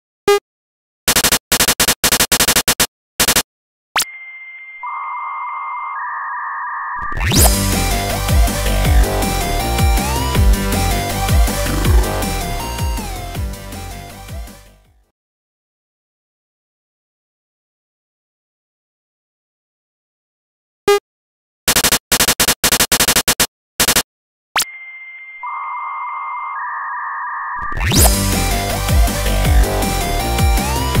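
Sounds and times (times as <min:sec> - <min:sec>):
rising electronic sweep: 0:09.0 - 0:13.2
buzzy electronic chirps: 0:11.0 - 0:13.2.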